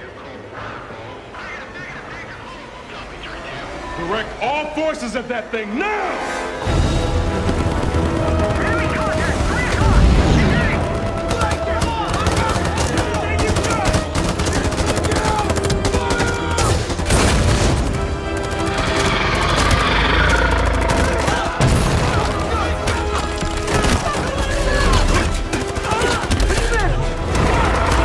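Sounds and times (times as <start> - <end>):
film music score: 0.0 - 28.0
rifle and machine-gun fire: 6.9 - 28.0.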